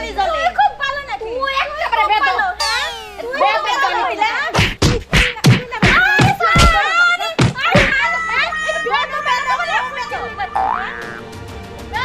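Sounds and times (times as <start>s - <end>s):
women shouting in argument: 5.8s - 10.6s.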